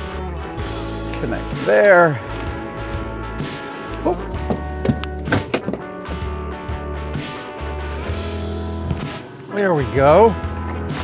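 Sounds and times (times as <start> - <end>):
background music with pulsing bass: 0.0 - 11.0
sharp knocks: 4.4 - 5.9.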